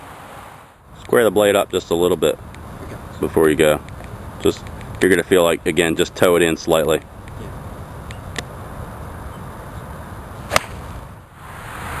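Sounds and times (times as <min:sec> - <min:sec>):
outdoor background noise: 0:00.0 - 0:12.0
golf club striking ball: 0:10.5 - 0:10.9.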